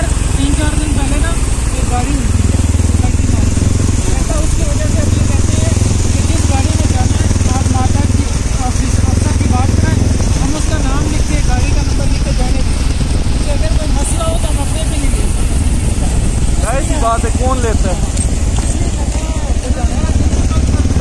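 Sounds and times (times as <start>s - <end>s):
small motorcycle engine running: 0.0s - 21.0s
wind rumble on microphone: 2.3s - 21.0s.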